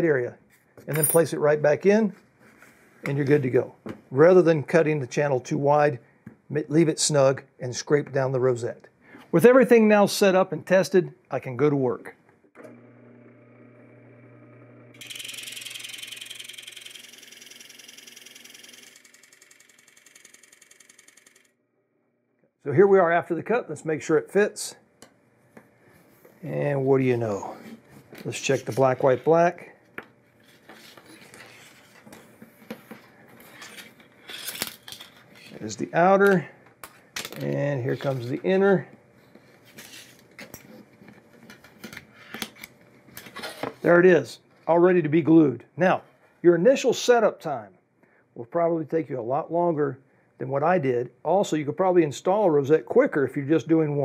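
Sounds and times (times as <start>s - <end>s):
drill press motor hum: 12.6s - 21.6s.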